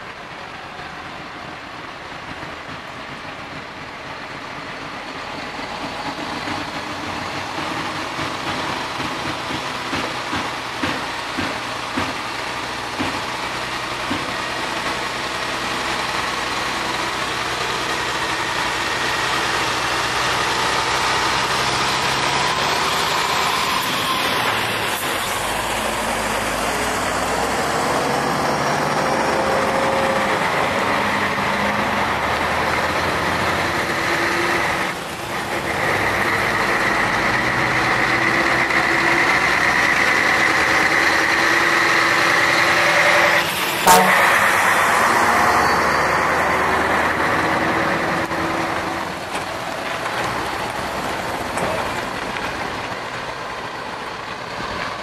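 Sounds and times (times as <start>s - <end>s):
truck diesel engines running: 0.0s - 55.0s
tyre and trailer rumble: 0.0s - 55.0s.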